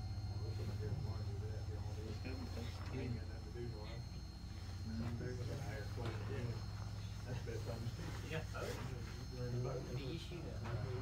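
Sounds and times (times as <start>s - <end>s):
faint men's voices talking: 0.0s - 11.0s
low steady hum: 0.0s - 11.0s.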